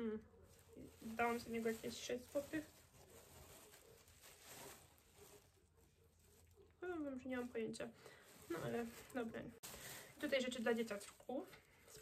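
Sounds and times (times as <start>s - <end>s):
faint rustling of knitwear: 0.0s - 12.0s.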